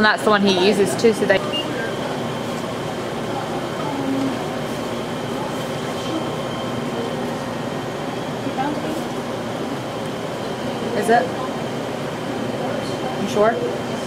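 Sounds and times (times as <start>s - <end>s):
faint indistinct voices: 0.0s - 14.0s
machine hum: 0.0s - 14.0s
faint high whine: 1.3s - 14.0s.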